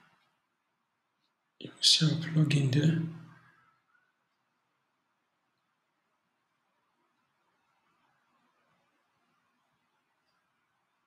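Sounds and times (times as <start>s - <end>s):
man speaking: 1.6s - 3.3s.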